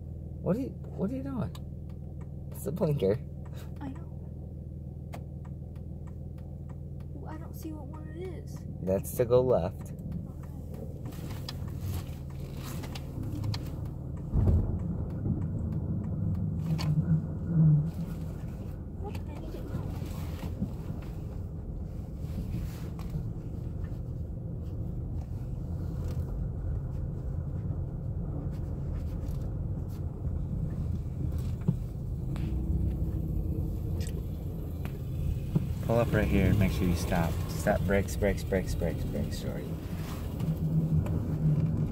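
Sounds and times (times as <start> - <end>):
car engine and tyre rumble: 0.0 - 41.9
knocks and bumps: 9.4 - 17.8.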